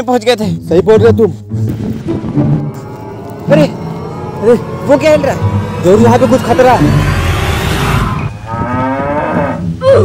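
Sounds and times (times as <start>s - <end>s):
animal-like call rising in pitch: 2.7s - 9.6s.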